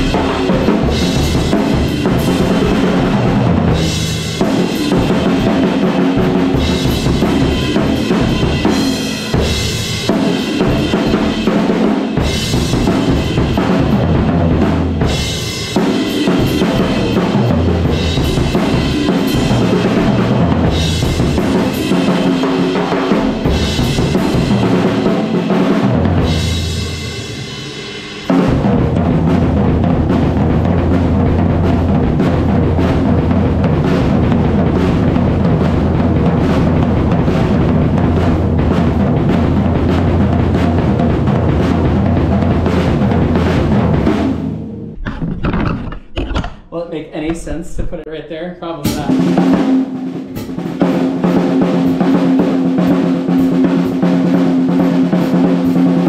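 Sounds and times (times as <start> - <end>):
acoustic drum kit playing: 0.0 - 45.1, 45.9 - 56.0.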